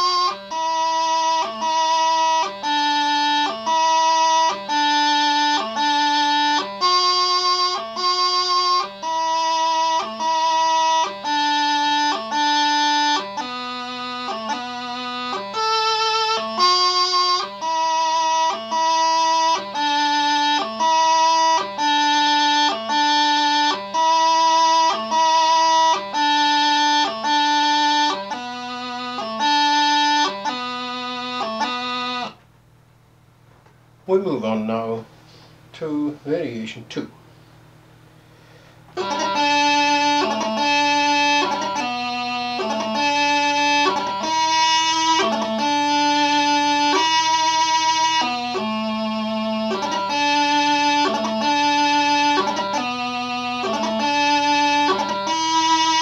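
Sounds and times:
practice chanter slow melody: 0:00.0 - 0:32.4, 0:34.1 - 0:56.0.

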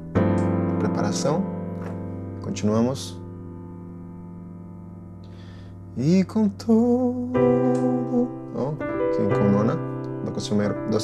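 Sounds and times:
electronic piano chord sustaining: 0:00.0 - 0:11.0.

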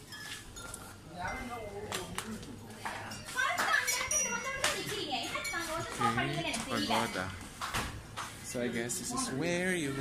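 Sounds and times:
adults and children talking: 0:01.0 - 0:10.0.

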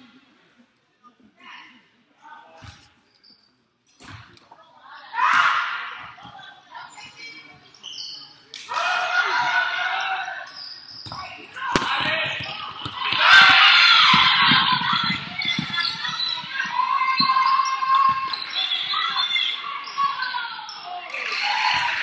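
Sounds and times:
crowd voices: 0:04.3 - 0:22.0
basketball bouncing on wooden floor: 0:11.0 - 0:16.5.

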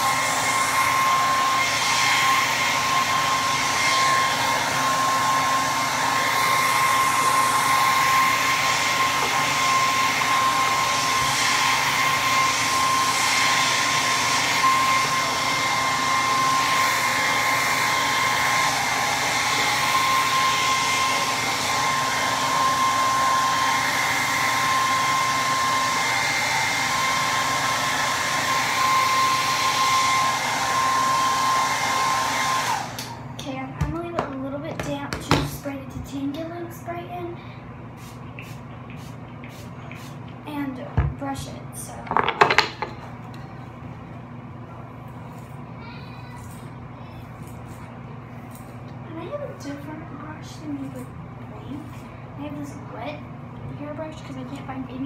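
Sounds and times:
blow dryer running: 0:00.0 - 0:45.8, 0:46.4 - 0:55.0.

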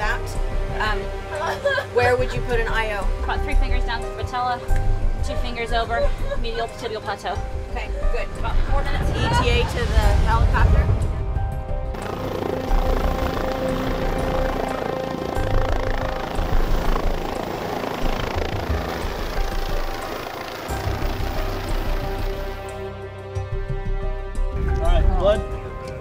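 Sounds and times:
helicopter rotor running: 0:00.0 - 0:09.6, 0:11.9 - 0:23.5
background music: 0:00.0 - 0:26.0.

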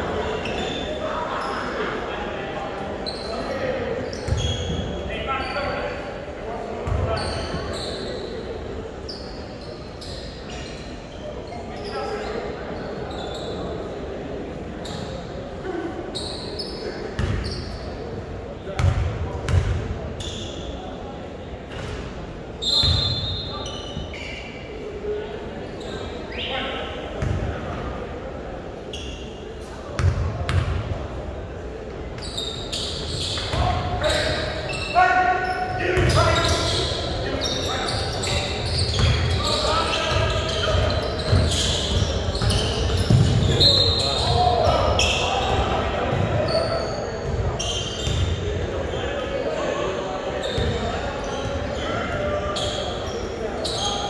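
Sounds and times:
sneaker squeak: 0:00.2 - 0:02.0, 0:03.0 - 0:06.0, 0:06.8 - 0:08.4, 0:09.0 - 0:13.9, 0:14.8 - 0:15.3, 0:16.0 - 0:18.1, 0:18.7 - 0:20.9, 0:21.7 - 0:24.8, 0:25.7 - 0:27.5, 0:28.9 - 0:30.8, 0:32.2 - 0:49.6, 0:50.2 - 0:54.0.

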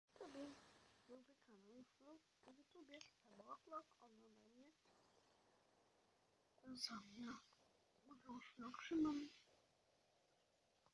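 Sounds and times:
person speaking quietly: 0:00.2 - 0:04.8, 0:08.1 - 0:09.4.

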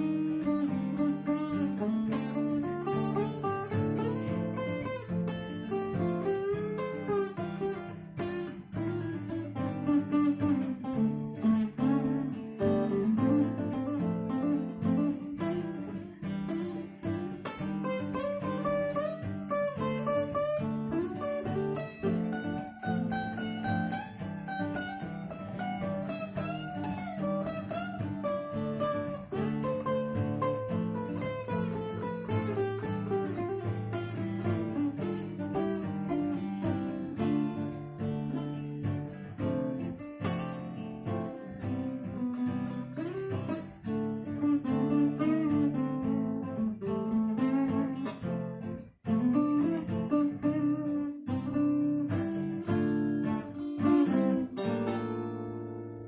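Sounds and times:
picked guitar melody: 0:00.0 - 0:56.0
strummed guitar chords: 0:00.0 - 0:56.0.

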